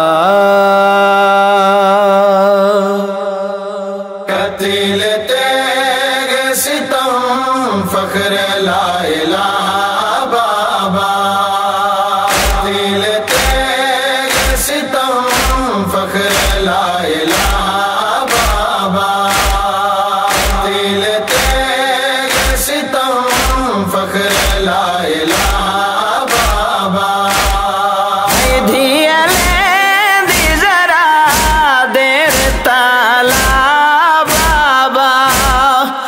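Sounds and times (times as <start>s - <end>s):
man chanting a lament: 0.0s - 36.0s
deep percussive beats: 12.2s - 35.8s.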